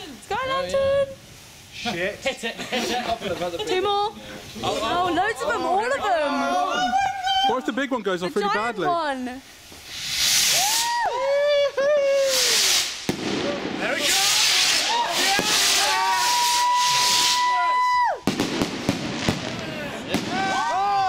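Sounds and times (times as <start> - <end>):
rocket rushing hiss: 0.0 - 6.2, 9.1 - 20.9
firework crackling pops: 9.2 - 11.2, 11.8 - 21.0
firework whistling: 9.2 - 21.0.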